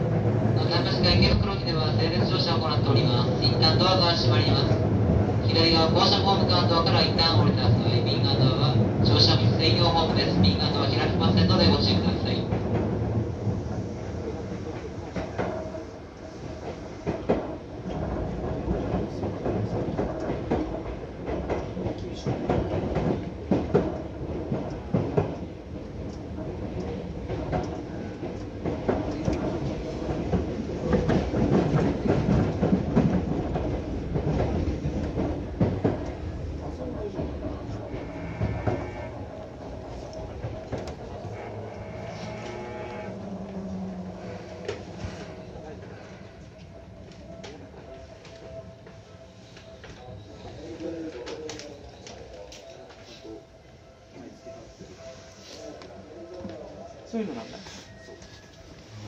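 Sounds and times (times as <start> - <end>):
train running noise: 0.0 - 59.0.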